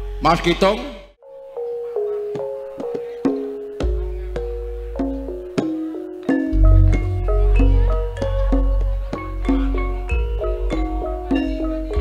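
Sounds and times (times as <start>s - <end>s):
metallophone notes ringing: 1.2s - 12.0s.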